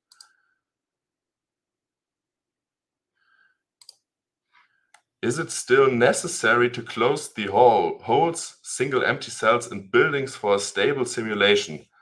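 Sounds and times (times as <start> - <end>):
faint clicks: 0.1 - 0.4, 3.8 - 4.0.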